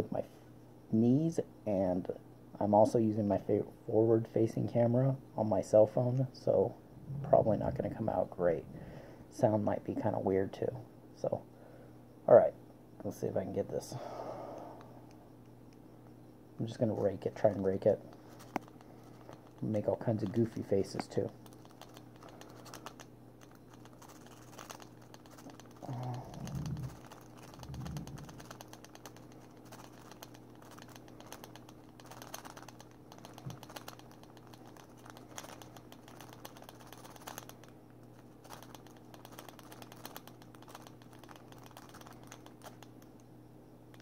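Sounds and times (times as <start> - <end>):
steady low hum: 0.0 - 44.0
low bumps: 6.9 - 8.9.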